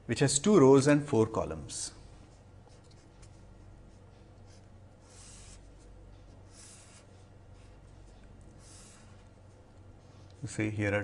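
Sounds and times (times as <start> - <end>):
low steady hum: 0.0 - 11.0
pen scratching on paper: 2.3 - 9.6.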